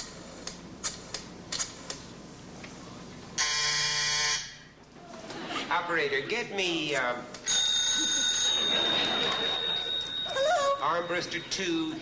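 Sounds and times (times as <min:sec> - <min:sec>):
loud steady buzz: 0:00.0 - 0:04.8.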